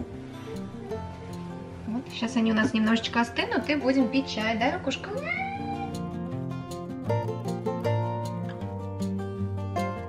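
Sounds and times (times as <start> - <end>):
guitar music: 0.0 - 10.0.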